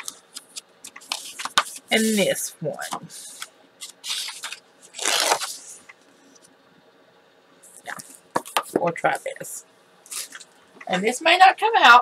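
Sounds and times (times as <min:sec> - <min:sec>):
paper rustling and sliding: 0:00.0 - 0:05.9.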